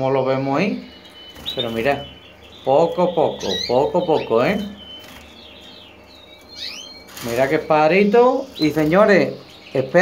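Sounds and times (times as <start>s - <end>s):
canaries chirping: 0.0s - 10.0s.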